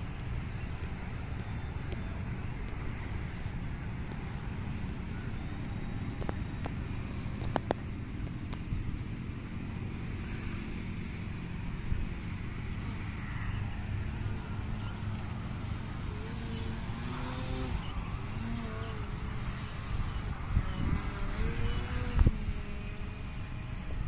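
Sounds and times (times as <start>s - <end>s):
distant road traffic rumble: 0.0s - 24.0s
faint high-pitched tone: 12.7s - 24.0s.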